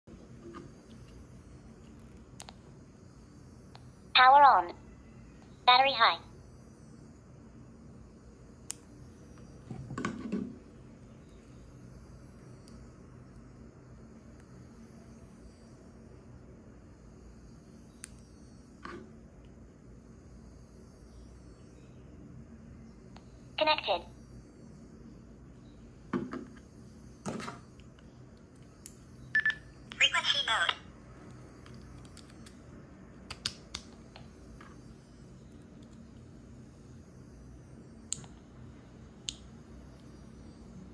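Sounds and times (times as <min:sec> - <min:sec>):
low steady hum: 0:00.1 - 0:40.9.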